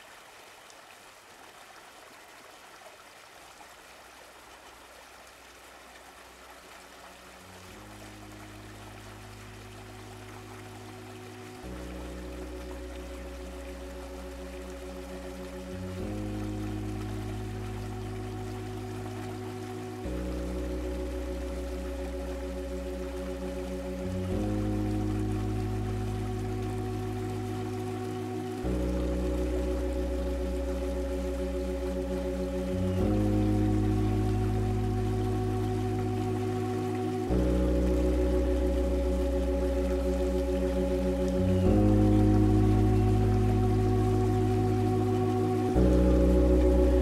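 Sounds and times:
steady noise hiss: 0.0 - 47.0
sustained synth chords: 7.7 - 47.0
deep bass: 11.6 - 47.0.

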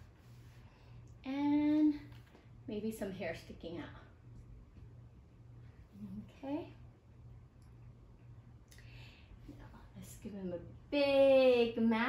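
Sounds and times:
soft hiss: 0.0 - 12.0
steady low hum: 0.0 - 12.0
woman speaking softly: 1.2 - 2.1, 5.9 - 6.9.

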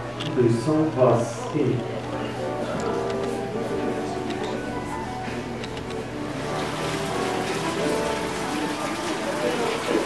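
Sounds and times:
background music with held notes: 0.0 - 10.0.

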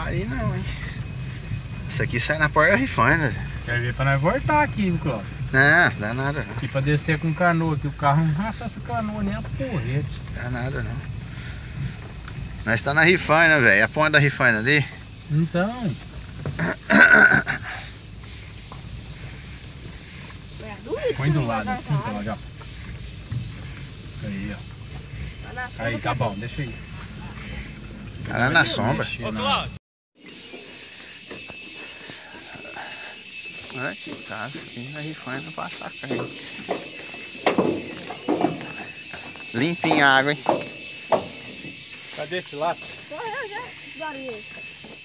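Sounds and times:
indistinct voices talking: 0.0 - 45.0.

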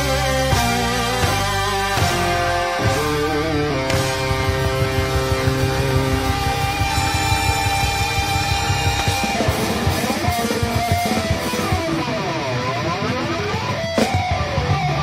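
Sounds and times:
live band playing: 0.0 - 15.0
sliding electric guitar notes: 0.0 - 15.0.

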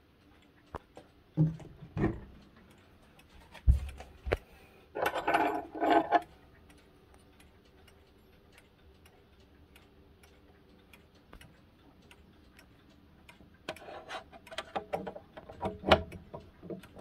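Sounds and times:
wall clock ticking: 0.0 - 17.0.

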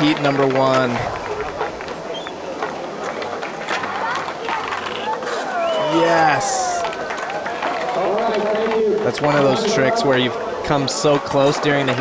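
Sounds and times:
skateboard clicks and clacks: 0.0 - 12.0
skateboard wheels rolling on concrete: 0.0 - 12.0.

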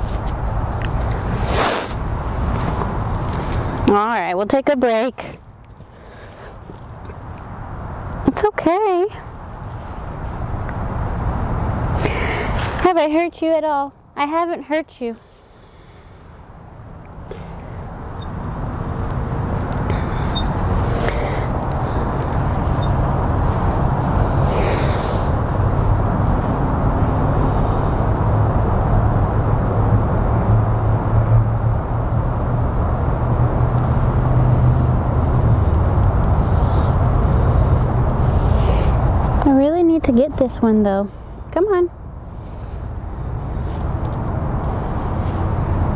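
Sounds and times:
low engine rumble: 0.0 - 45.9.

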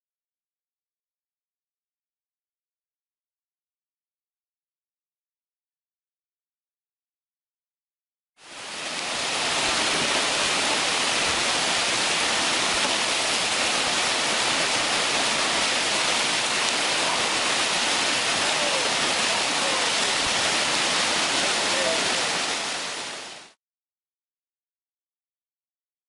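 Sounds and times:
river rapids roaring: 8.4 - 23.5.

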